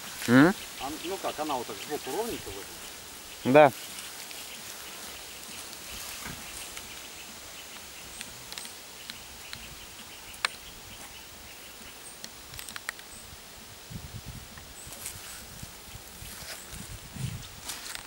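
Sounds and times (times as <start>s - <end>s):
steady outdoor hiss: 0.0s - 18.0s.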